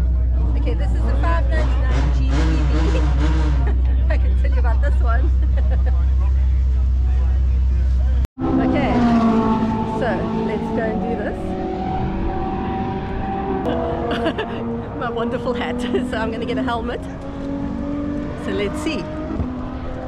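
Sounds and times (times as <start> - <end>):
sports car engine idling: 0.0 - 8.2
voices chattering: 0.0 - 9.2.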